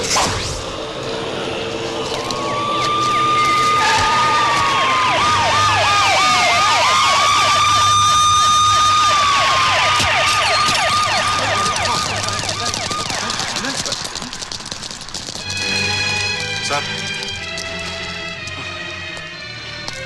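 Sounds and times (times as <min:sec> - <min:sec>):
wailing police siren: 0:00.8 - 0:14.1
yelping police siren: 0:02.4 - 0:14.1.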